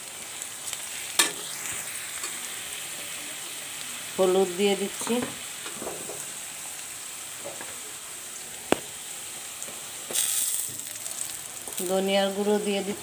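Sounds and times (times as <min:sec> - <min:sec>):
onions sizzling in hot oil: 0:00.0 - 0:13.0.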